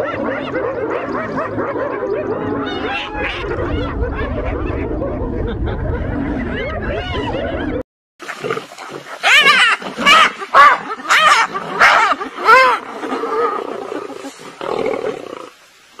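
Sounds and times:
lion calling: 0.0s - 7.6s
hyenas calling: 0.0s - 7.7s.

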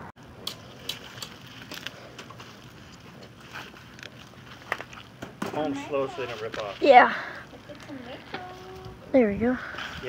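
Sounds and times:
leaves rustling and crackling: 0.2s - 10.0s.

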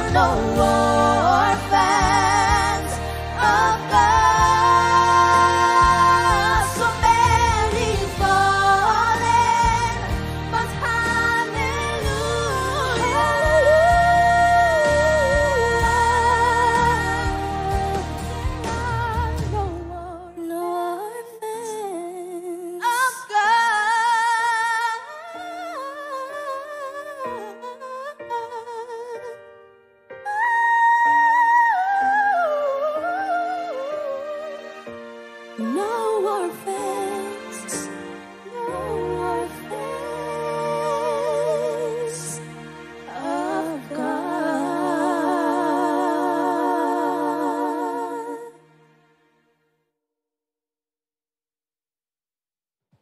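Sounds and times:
women singing in harmony: 0.0s - 29.4s, 30.3s - 34.8s, 35.6s - 48.6s.

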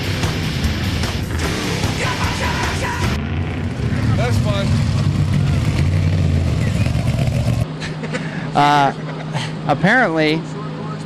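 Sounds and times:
truck engine running: 0.0s - 9.6s
indistinct voices: 1.4s - 7.6s.

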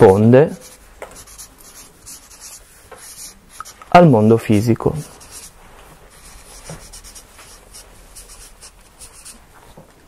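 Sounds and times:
pen scratching on paper: 0.5s - 3.8s, 5.0s - 9.5s.

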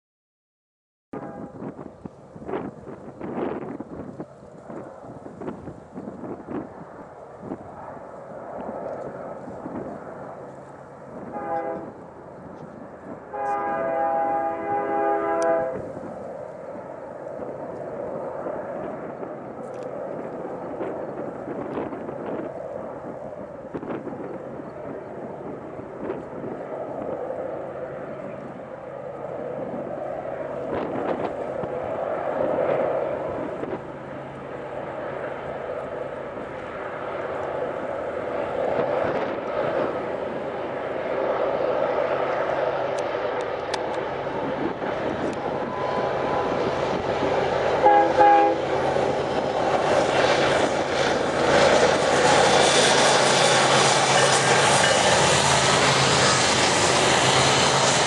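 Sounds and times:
locomotive air horn blasts: 1.2s - 1.7s, 11.2s - 12.0s, 13.3s - 15.8s, 47.8s - 48.7s
diesel locomotive engine drone: 1.2s - 58.0s
train rumbling: 1.2s - 58.0s.

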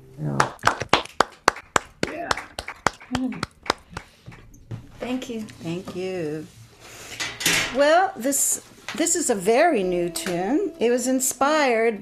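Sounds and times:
hand clapping: 0.4s - 4.5s.

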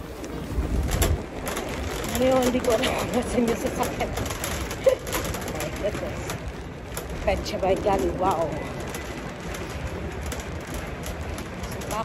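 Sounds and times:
handling and walking noise: 0.0s - 12.0s
steady low rumble: 0.0s - 12.0s.

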